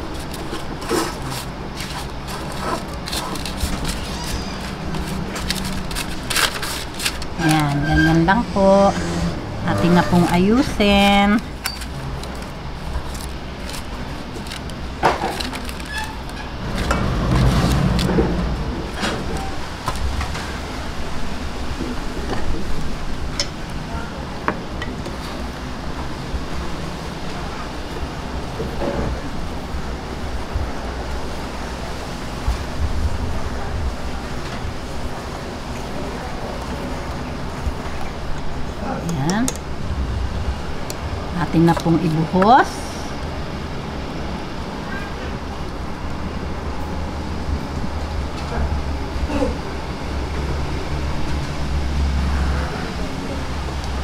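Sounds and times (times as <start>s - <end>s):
baking paper rustling and crinkling: 0.0s - 8.4s, 10.6s - 20.2s
low background hum: 0.0s - 54.0s.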